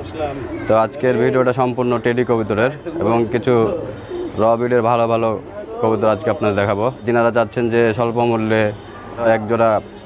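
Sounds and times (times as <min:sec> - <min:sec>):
man talking: 0:00.0 - 0:09.9
pigeons cooing: 0:02.7 - 0:06.5.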